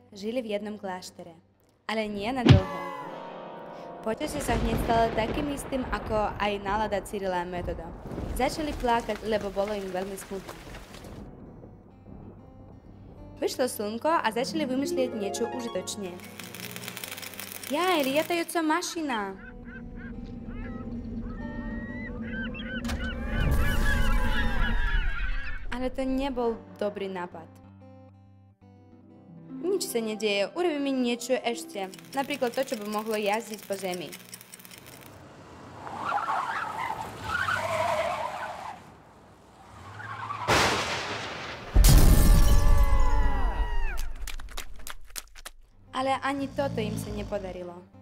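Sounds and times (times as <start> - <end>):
rumbling boom: 4.4 - 9.2, 11.0 - 13.8, 40.5 - 43.5
cartoon droning hum: 19.4 - 24.7
cartoon car skidding: 19.4 - 25.8, 35.4 - 41.0
car crash: 22.8 - 25.0, 35.2 - 43.2
sharp crash: 40.4 - 43.1.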